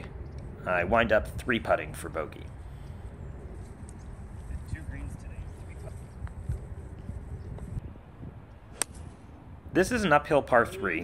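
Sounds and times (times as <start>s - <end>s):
wind noise on microphone: 2.8s - 10.0s
golf club striking ball: 8.7s - 9.1s.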